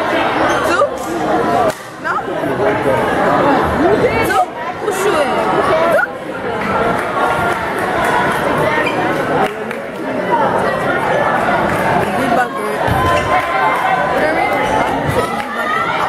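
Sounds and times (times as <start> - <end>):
spectators chattering: 0.0 - 16.0.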